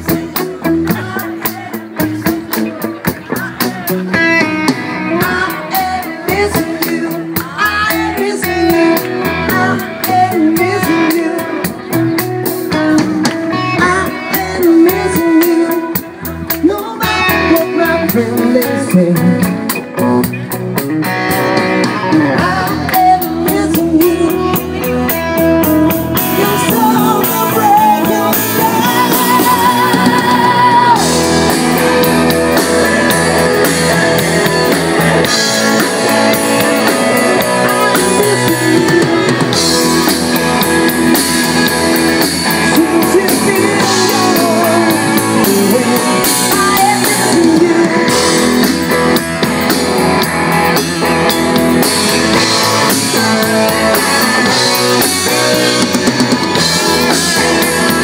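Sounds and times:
bass guitar: 0.0 - 58.0
drum kit: 0.0 - 58.0
electric guitars: 0.0 - 58.0.

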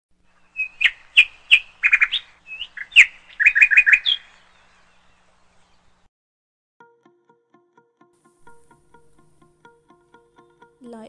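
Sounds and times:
bird chirping and trilling: 0.4 - 6.0.

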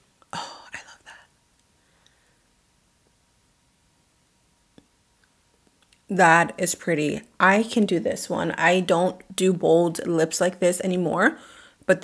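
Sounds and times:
woman whispering: 0.3 - 1.3.

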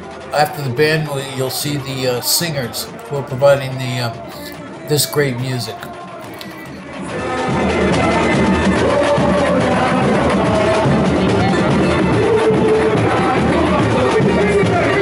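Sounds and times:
person singing melody: 0.4 - 6.8
samba drum section playing: 6.8 - 15.0.

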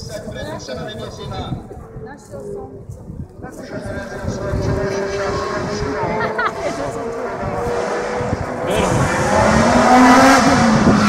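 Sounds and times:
wind rumbling on microphone: 0.0 - 11.0
race car engine approaching: 3.5 - 11.0.

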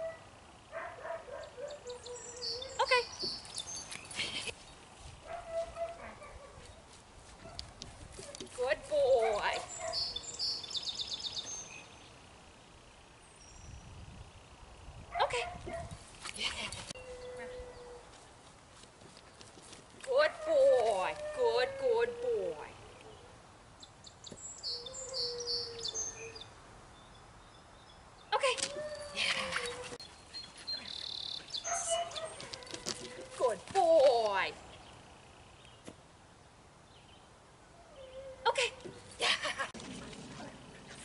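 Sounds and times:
dog paws running: 18.0 - 20.1, 29.4 - 34.3.

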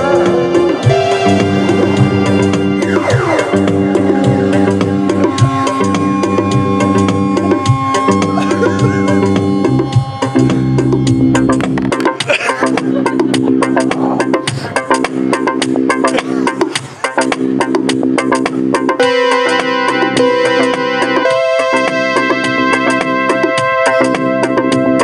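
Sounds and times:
electronic keyboard chords: 0.0 - 25.0
bright sustained keyboard voice: 1.8 - 11.6.

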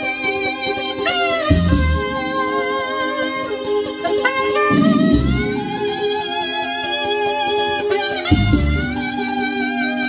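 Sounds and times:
alto saxophone melody: 0.0 - 10.0
pop backing track with bass beats: 0.0 - 10.0.

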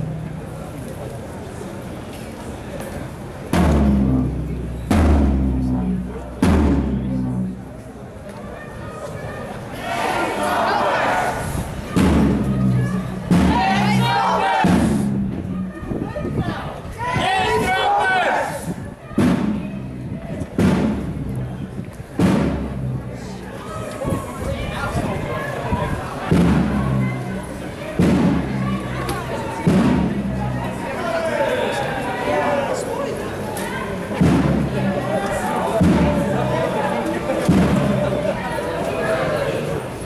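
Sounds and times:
marching drum hits: 3.5 - 7.8, 11.9 - 15.8, 19.2 - 20.0, 20.6 - 21.6, 22.2 - 23.3, 26.3 - 30.8, 34.2 - 35.1, 35.7 - 36.7, 37.4 - 38.3.

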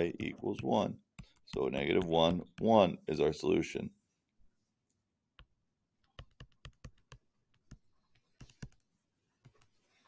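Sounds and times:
stylus tapping on screen: 1.1 - 2.8, 5.4 - 9.7.

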